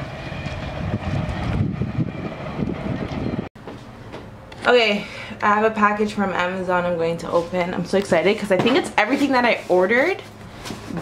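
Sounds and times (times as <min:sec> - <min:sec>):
wind buffeting microphone: 0:00.0 - 0:03.5.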